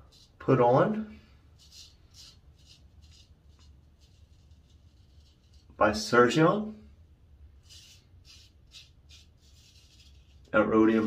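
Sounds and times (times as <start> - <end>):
razor scraping stubble: 1.5 - 6.1, 7.6 - 11.0.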